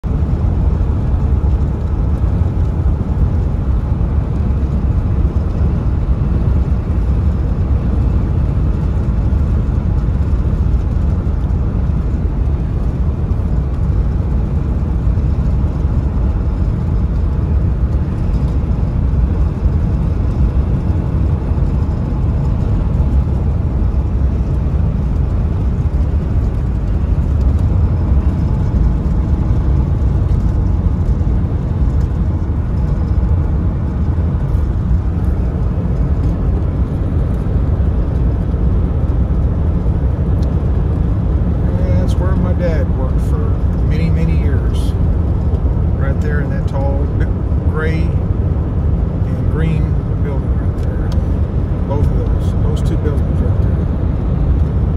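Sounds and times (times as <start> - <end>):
road and engine rumble: 0.0 - 54.9.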